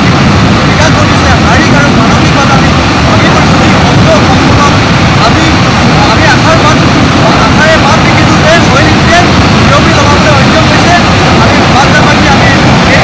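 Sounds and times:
man speaking: 0.7 - 13.0.

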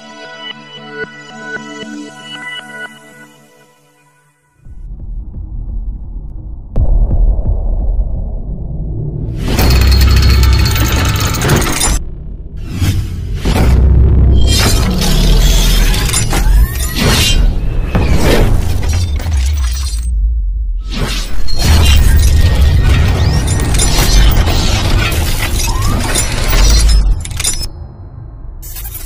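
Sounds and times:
cinematic music with deep bass: 0.0 - 29.0
deep bass rumble: 4.7 - 15.7, 20.1 - 20.9
crash sound effects: 6.8 - 27.2
glassy shattering and clinking hits: 9.5 - 12.0.

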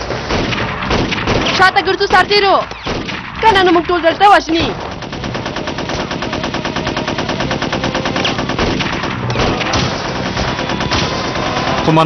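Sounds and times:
machine gun firing bursts: 0.0 - 12.0.

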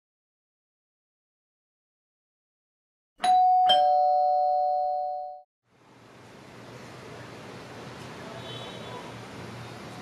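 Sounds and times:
two-note doorbell chime: 3.2 - 5.4.

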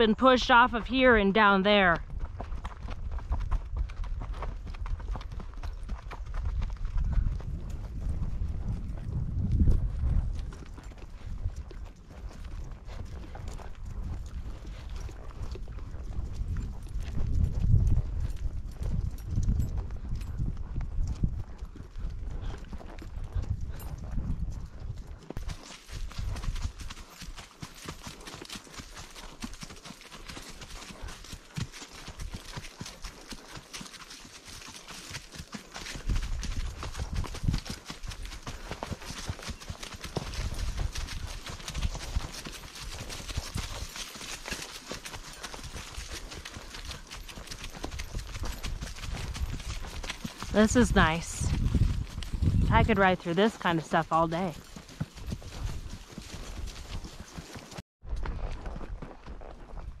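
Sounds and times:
hooves clip-clopping on grass: 0.0 - 60.0.

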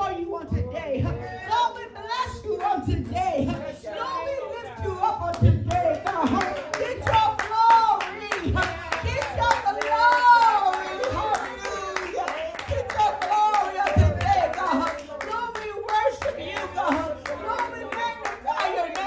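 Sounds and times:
rhythmic hand-clapping: 1.6 - 19.0.

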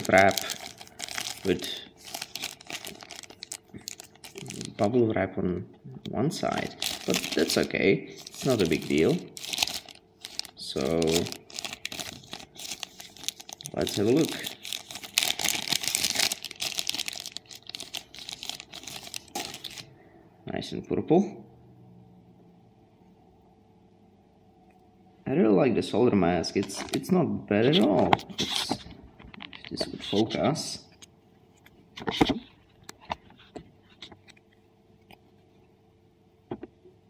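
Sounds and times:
plastic pouch crinkling: 0.0 - 5.0, 6.4 - 19.9.

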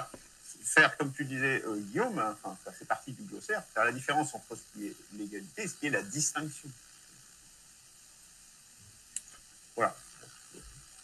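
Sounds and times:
person speaking word: 0.0 - 6.7
audio feed hiss: 0.0 - 11.0.

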